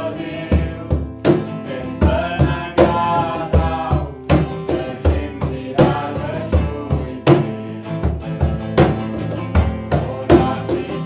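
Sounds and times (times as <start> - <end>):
acoustic guitars: 0.0 - 11.0
men and women singing: 0.0 - 11.0
cajon low thumps: 0.5 - 11.0.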